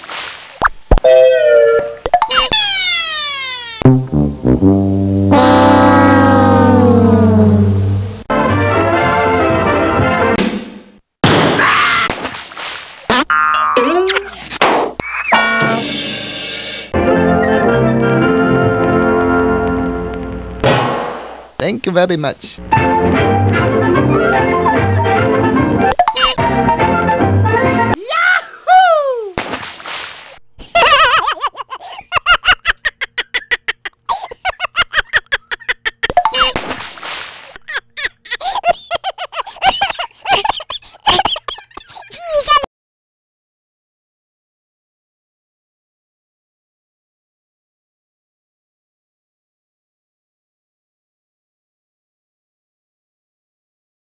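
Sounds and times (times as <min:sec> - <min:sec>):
high-pitched squeaky cries: 0:01.4 - 0:03.8
springy boing: 0:03.8 - 0:07.4, 0:13.1 - 0:14.2, 0:15.3 - 0:15.9
background music: 0:03.8 - 0:10.7, 0:15.4 - 0:21.6, 0:22.6 - 0:28.0.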